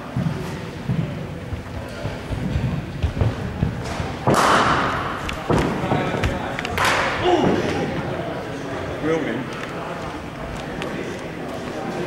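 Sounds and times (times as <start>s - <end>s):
cricket bat striking ball: 4.2s - 7.8s.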